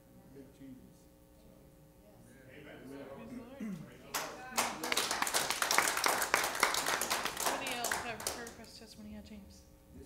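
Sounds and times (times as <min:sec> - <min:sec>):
congregation applauding: 0:04.1 - 0:08.6.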